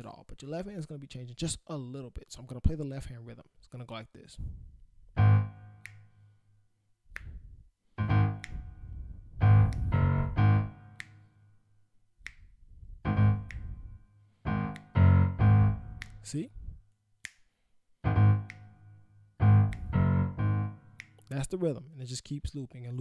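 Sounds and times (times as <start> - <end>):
keyboard bass octaves: 5.1 - 6.3, 8.0 - 11.7, 12.9 - 16.8, 18.0 - 21.4.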